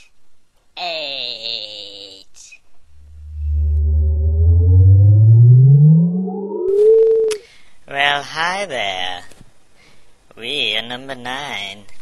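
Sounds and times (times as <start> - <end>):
higher note rising and falling: 3.0 - 7.4
low tone gliding upward: 3.0 - 7.4.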